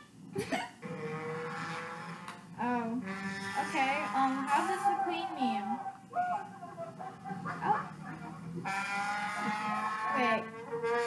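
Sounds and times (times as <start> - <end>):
music from television speaker: 3.0 - 11.0.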